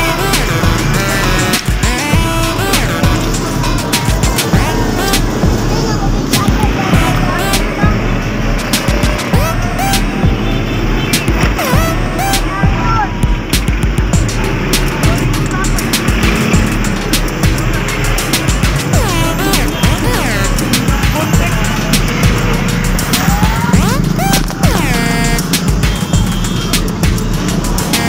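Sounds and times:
music: 0.0s - 28.0s
passing traffic: 0.0s - 28.0s
voices: 0.0s - 28.0s.

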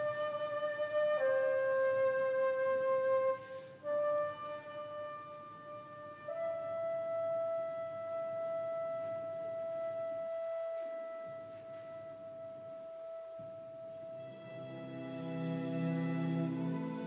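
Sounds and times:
alto flute sustained note: 0.0s - 17.0s.

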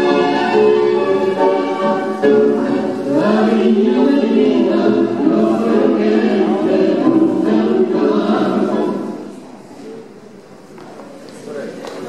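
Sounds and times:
tango music with singing: 0.0s - 9.9s.

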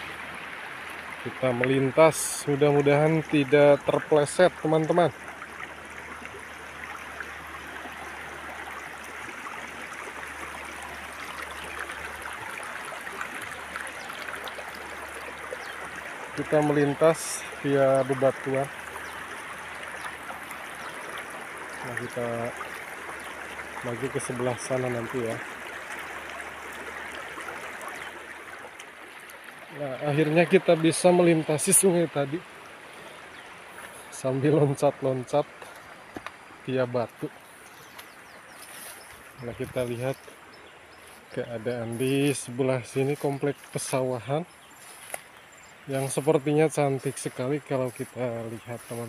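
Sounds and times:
river running over rocks: 0.0s - 49.0s
stream flowing over stones: 0.0s - 49.0s.

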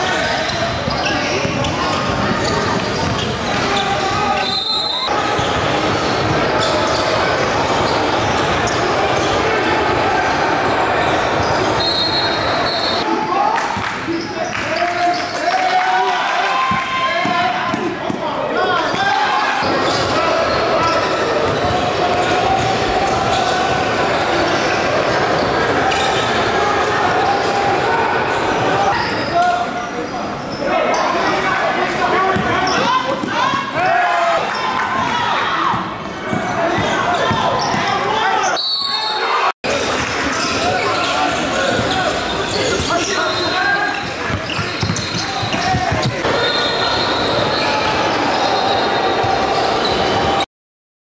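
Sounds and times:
echoing voices and shouts: 0.0s - 50.4s.

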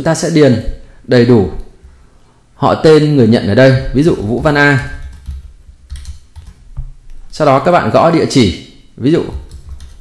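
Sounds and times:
computer keyboard keystrokes: 4.1s - 6.9s, 9.3s - 10.0s.

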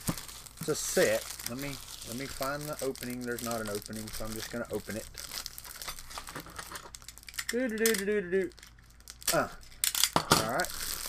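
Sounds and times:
paper packaging tearing: 0.0s - 7.8s, 10.4s - 11.0s.

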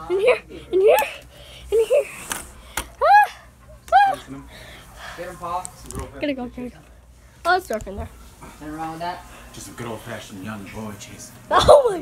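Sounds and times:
person making high-pitched cries: 3.0s - 4.3s.

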